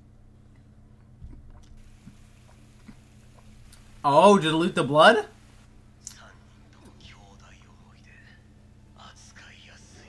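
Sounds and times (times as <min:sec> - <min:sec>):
steady low hum: 0:00.0 - 0:10.0
faint spoken dialogue: 0:04.0 - 0:10.0.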